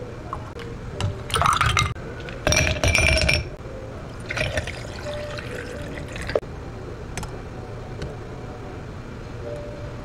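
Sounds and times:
ice cubes clinking in glass: 1.3 - 3.5, 4.3 - 6.4
water pouring over ice: 4.3 - 6.4.

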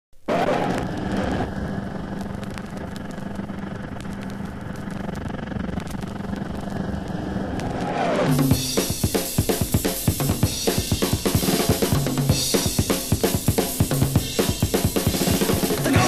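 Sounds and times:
whooshing noise drone: 0.3 - 8.5
low hum: 0.4 - 8.5
rock drums: 7.6 - 16.0.

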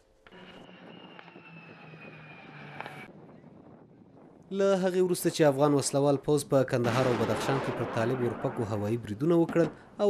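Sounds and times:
aircraft engine flying past: 0.3 - 4.2.

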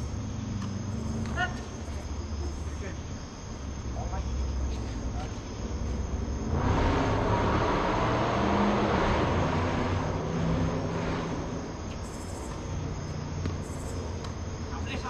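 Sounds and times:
vehicle passing: 0.0 - 15.0.

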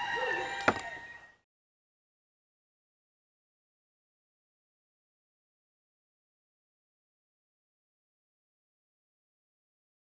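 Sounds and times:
rooster crowing: 0.0 - 1.4.

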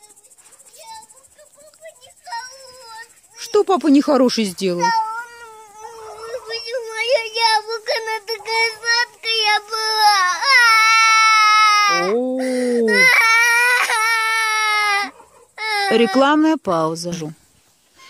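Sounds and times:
girl crying and wailing: 1.6 - 3.1, 4.8 - 16.3.

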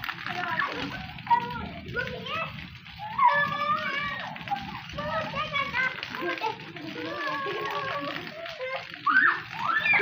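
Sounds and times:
girls laughing and squealing: 2.9 - 10.0.

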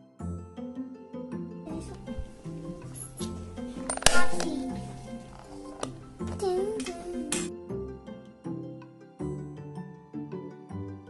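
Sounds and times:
background music: 0.0 - 11.0
child's voice: 1.6 - 2.9, 4.2 - 5.0, 6.2 - 7.5
plastic parts clinking: 2.8 - 6.4.

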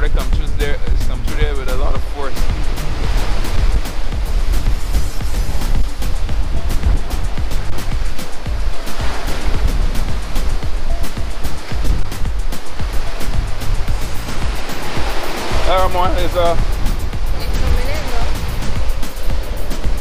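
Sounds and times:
background music: 0.0 - 20.0
ocean surf rushing: 0.0 - 20.0.

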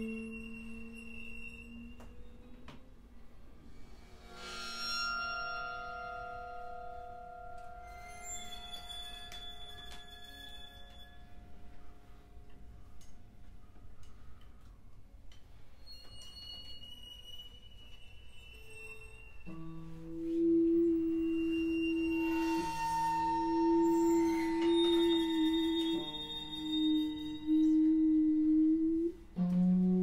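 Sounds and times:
faint high ringing tones: 0.0 - 2.6, 4.6 - 12.8, 15.8 - 29.1
long sustained low tones: 0.0 - 9.8, 18.7 - 30.0.

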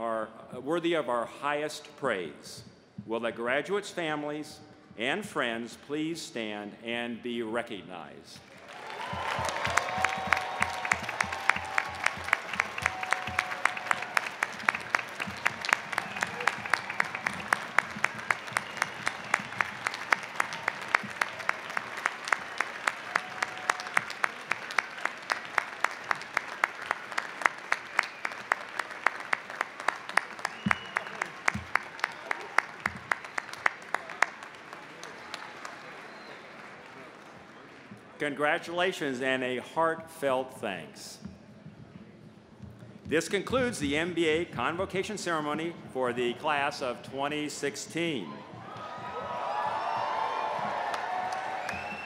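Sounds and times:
large audience applauding: 8.4 - 38.2, 48.5 - 52.0
sharp regular claps close by: 8.4 - 38.2.

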